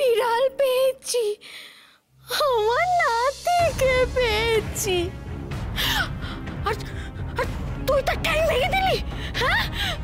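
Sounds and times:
dramatic background music: 0:02.1 - 0:10.0.

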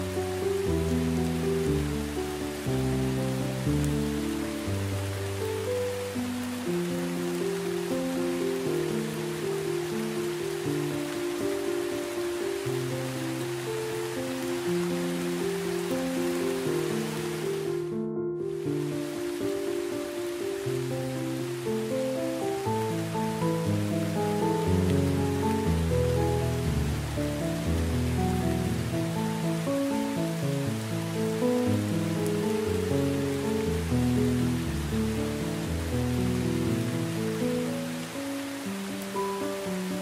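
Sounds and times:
heavy rain hissing: 0:00.0 - 0:40.0
slow soft instrumental music: 0:00.0 - 0:40.0.

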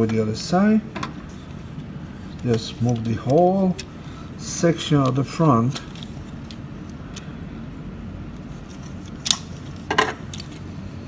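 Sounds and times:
room noise: 0:00.0 - 0:11.0
plastic figure parts clicking: 0:02.4 - 0:04.0.

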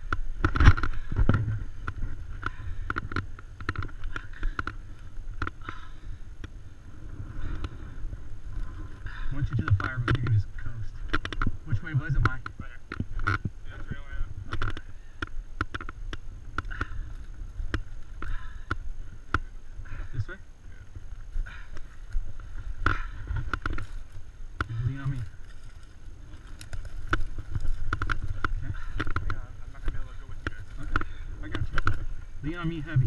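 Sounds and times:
sharp clicks and scrapes: 0:00.0 - 0:04.8
wind rumbling on microphone: 0:00.0 - 0:33.0
footsteps crunching on dirt: 0:19.0 - 0:33.0.

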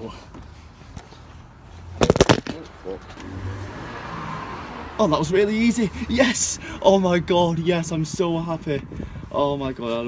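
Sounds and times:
oil filter cracking loose: 0:02.0 - 0:02.6.

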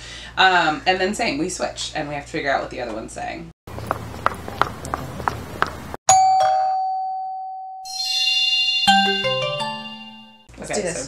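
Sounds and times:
two-note doorbell chime: 0:06.1 - 0:10.5
bright shimmering music: 0:07.9 - 0:10.5.

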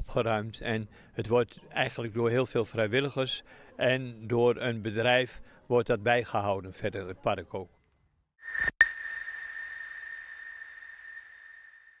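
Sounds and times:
high ringing tone: 0:08.4 - 0:12.0
rising whoosh: 0:08.4 - 0:12.0.

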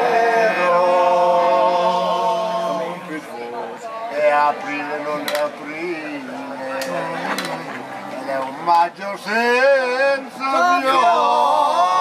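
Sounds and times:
people talking: 0:00.3 - 0:12.0.

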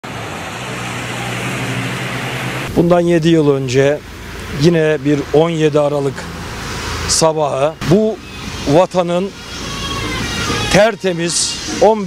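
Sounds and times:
traffic on a wet road: 0:00.0 - 0:12.0.

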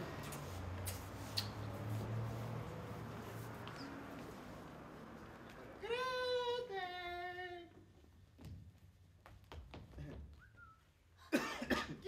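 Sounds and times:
person coughing loudly: 0:11.2 - 0:12.0.

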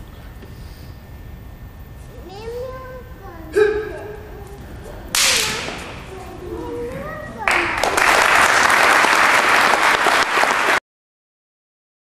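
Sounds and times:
voices exclaiming: 0:03.4 - 0:07.8
stick cracking against body: 0:05.1 - 0:06.0
audience applause: 0:07.4 - 0:10.8.

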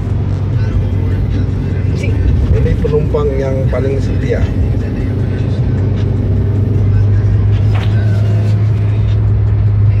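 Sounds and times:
car engine and road rumble: 0:00.0 - 0:10.0.

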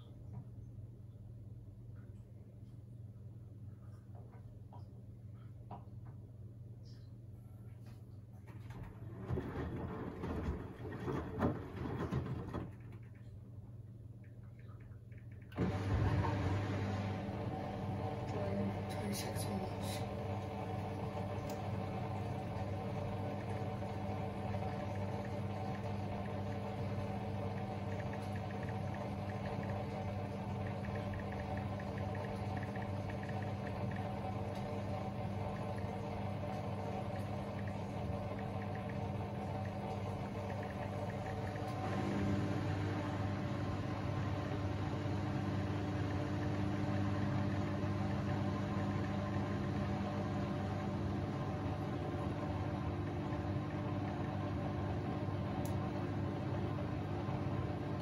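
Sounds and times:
drain pump humming: 0:07.8 - 0:58.0
washing machine drum swishing: 0:15.6 - 0:58.0.

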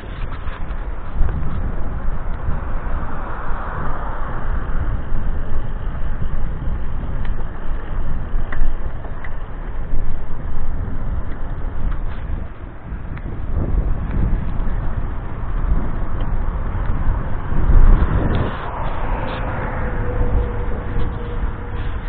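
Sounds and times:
car passing: 0:00.0 - 0:10.4, 0:11.6 - 0:22.0
tyre and road noise: 0:00.0 - 0:22.0
wind buffeting microphone: 0:00.0 - 0:22.0.

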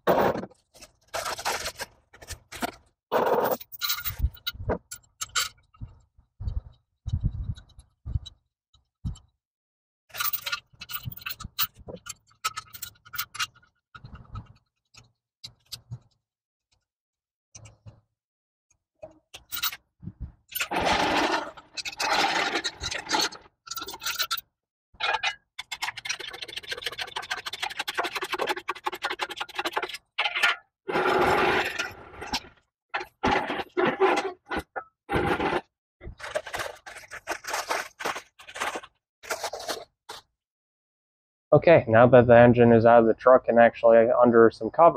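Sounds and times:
engine hoist scraping and rattling: 0:20.6 - 0:24.4, 0:30.2 - 0:32.4.

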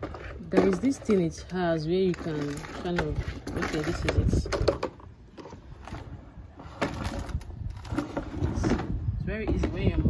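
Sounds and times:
plastic bucket clicks and knocks: 0:02.5 - 0:05.1.

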